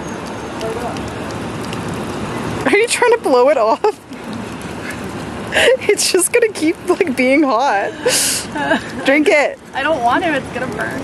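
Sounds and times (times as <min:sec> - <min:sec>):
water splashing onto stone: 0:00.0 - 0:11.0
woman laughing: 0:04.9 - 0:06.0, 0:07.7 - 0:09.3.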